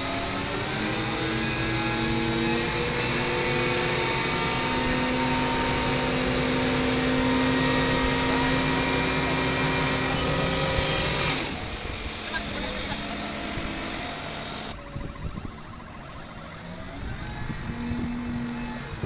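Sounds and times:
diesel engine droning: 0:00.0 - 0:19.0.

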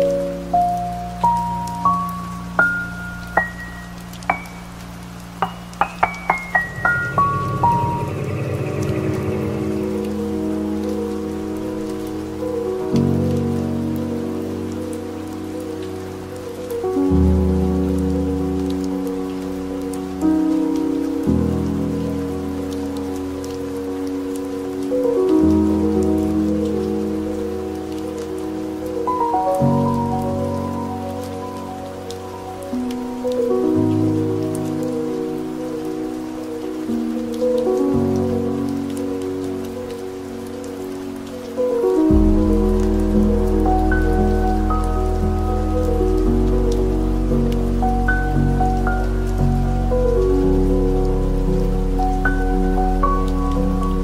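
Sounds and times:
rain: 0:00.0 - 0:54.0
slow piano chords: 0:00.0 - 0:54.0.

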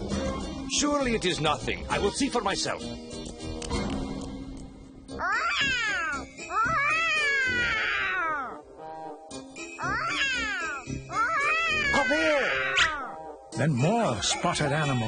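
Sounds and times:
background music: 0:00.0 - 0:15.0
cartoon voice meowing and yowling: 0:05.2 - 0:08.7, 0:09.8 - 0:13.2.

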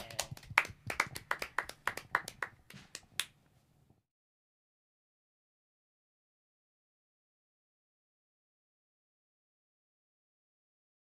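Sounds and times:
people clapping: 0:00.0 - 0:03.4.

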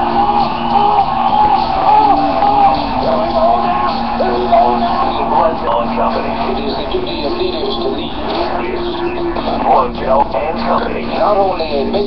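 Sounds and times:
indistinct voices: 0:00.0 - 0:12.0
music: 0:00.0 - 0:12.0.

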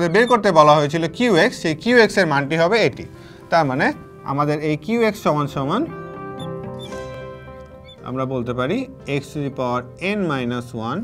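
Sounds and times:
background music with held notes: 0:00.0 - 0:11.0
marker pen squeaking on glass: 0:06.0 - 0:08.1.

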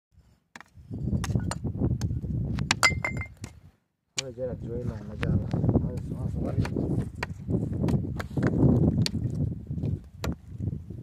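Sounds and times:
rock fragments clinking: 0:02.8 - 0:03.4.

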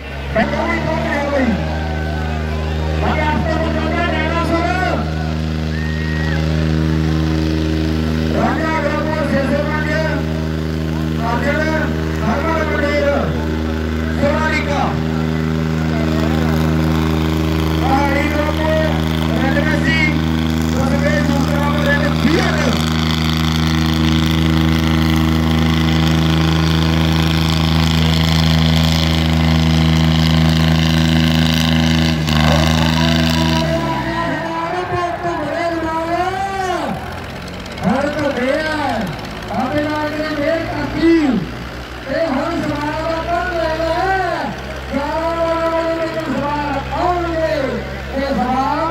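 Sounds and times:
tractor diesel engine droning: 0:00.0 - 0:48.9
man shouting: 0:32.4 - 0:37.2.

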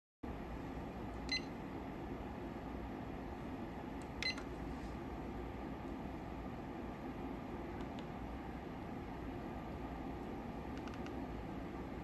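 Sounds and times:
low hum of bench instruments: 0:00.3 - 0:12.0.

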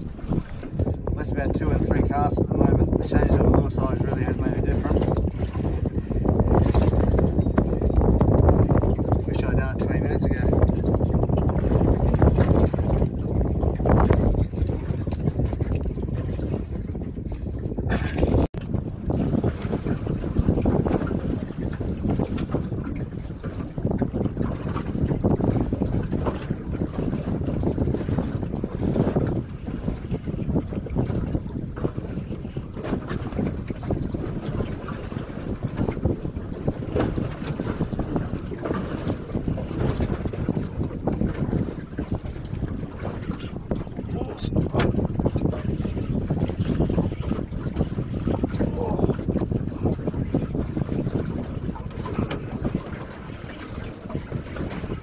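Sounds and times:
water lapping against boat hull: 0:00.0 - 0:55.0
wind buffeting microphone: 0:00.0 - 0:55.0.

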